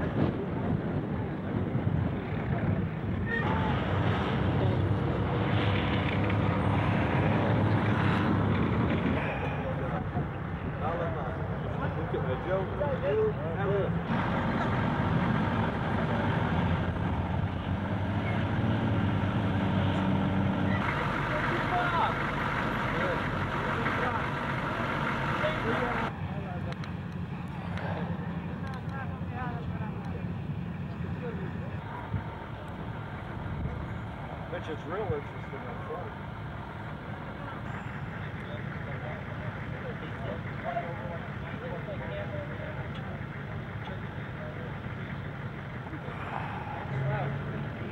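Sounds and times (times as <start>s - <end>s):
faint voices: 0.0s - 14.1s, 20.6s - 47.9s
tracked vehicle engines droning: 0.0s - 47.9s.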